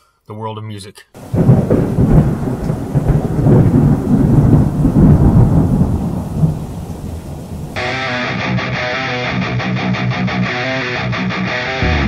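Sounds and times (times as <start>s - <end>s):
rain: 1.2s - 8.4s
thunder rumbling: 1.2s - 8.6s
guitar music: 7.8s - 12.0s.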